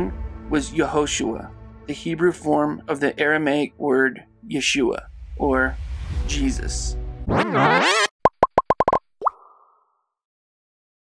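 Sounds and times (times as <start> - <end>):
swooping electronic warble: 7.3 - 9.0
rising blip: 7.3 - 9.8.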